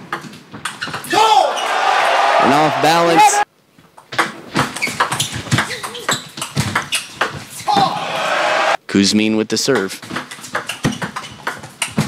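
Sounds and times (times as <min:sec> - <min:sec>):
crowd cheering and shouting: 0:01.1 - 0:03.5, 0:07.7 - 0:08.8.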